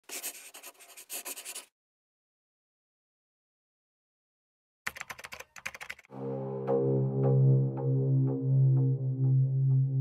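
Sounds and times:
pen scratching on paper: 0.0 - 1.7.

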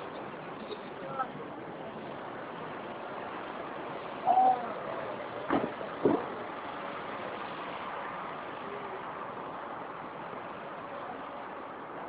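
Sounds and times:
background rumble and hiss: 0.0 - 12.0
sharp knocks: 5.5 - 6.3.

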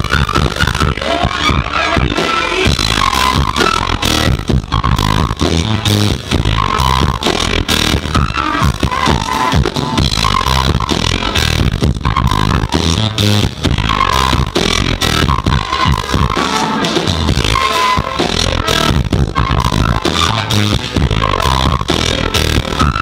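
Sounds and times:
flute melody: 0.0 - 11.0
drum kit beat: 0.0 - 23.0.

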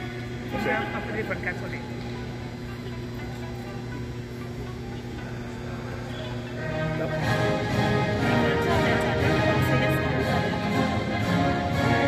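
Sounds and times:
anthem music over loudspeakers: 0.0 - 2.7, 5.3 - 12.0.

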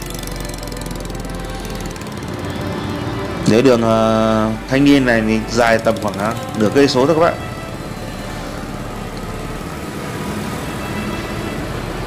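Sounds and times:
motor scooter road noise: 0.0 - 12.0
passing scooters and cars: 0.0 - 12.0.

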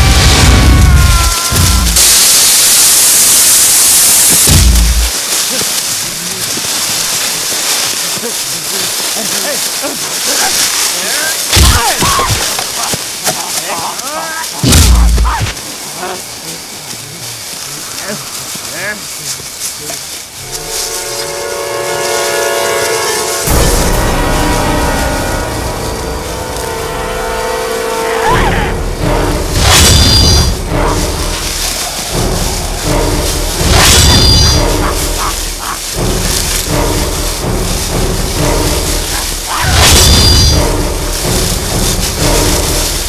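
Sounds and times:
low rumble and noise: 0.0 - 11.0, 23.4 - 43.0
sustained drone chord: 23.4 - 28.2.

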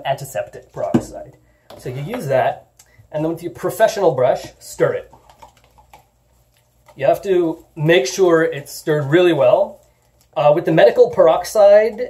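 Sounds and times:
brush stirring in plastic container: 3.2 - 12.0.

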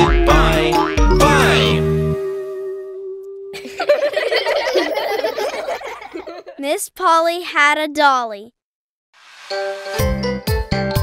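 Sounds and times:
cheerful cartoon voice speaking: 6.6 - 8.6.

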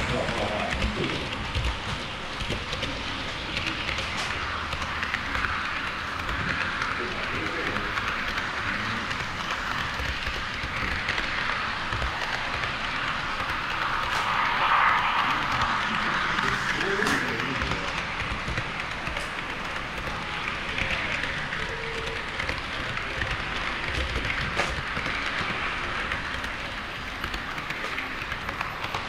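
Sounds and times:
model train wheels on track: 0.0 - 29.0.

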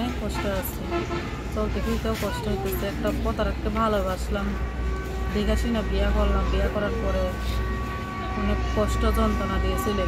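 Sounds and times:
people talking: 0.0 - 4.6, 5.3 - 7.6, 8.3 - 10.0.

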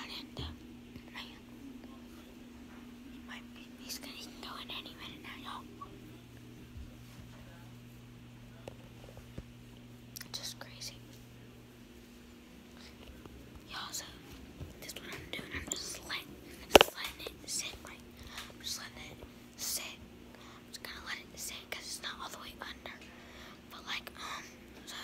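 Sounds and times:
boy whispering: 0.0 - 2.0, 3.1 - 6.0, 10.2 - 11.1, 20.7 - 23.0, 23.7 - 25.0
steady low hum: 0.0 - 25.0.

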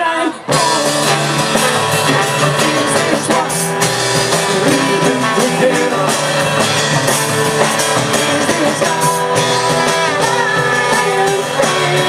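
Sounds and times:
rock and roll band playing: 0.0 - 12.0.

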